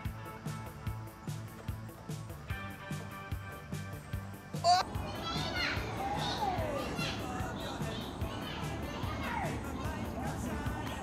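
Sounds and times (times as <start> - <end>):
background music with steady beat: 0.0 - 11.0
children calling out: 4.6 - 10.5.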